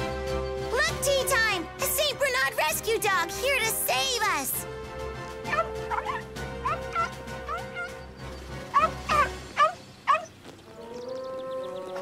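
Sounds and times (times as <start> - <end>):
soft background music: 0.0 - 12.0
cartoon puppy yipping: 5.5 - 8.0, 8.7 - 10.3.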